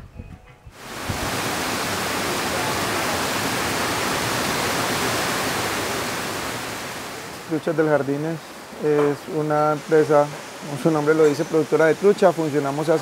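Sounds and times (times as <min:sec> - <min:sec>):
water rushing over weirs: 0:00.8 - 0:13.0.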